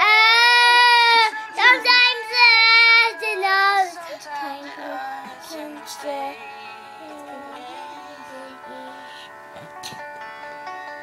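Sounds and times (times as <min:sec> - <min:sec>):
girl singing in a high voice: 0:00.0 - 0:06.4, 0:07.0 - 0:09.0.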